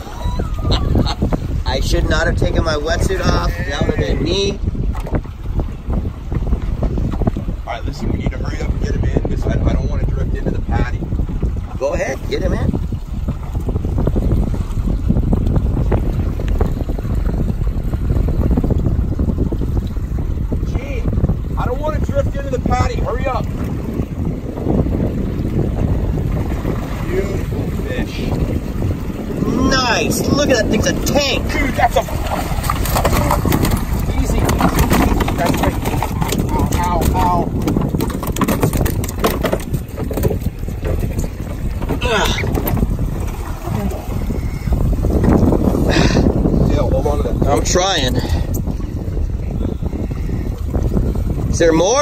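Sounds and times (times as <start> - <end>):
water slapping against hull: 0.0 - 52.0
wind rumbling on microphone: 0.0 - 52.0.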